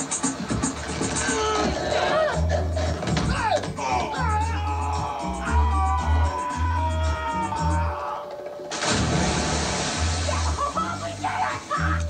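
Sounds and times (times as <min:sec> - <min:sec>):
bodies splashing into water: 0:08.7 - 0:11.0.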